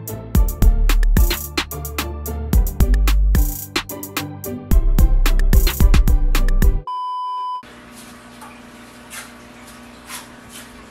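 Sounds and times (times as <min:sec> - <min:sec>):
test-tone beep: 0:06.8 - 0:07.6.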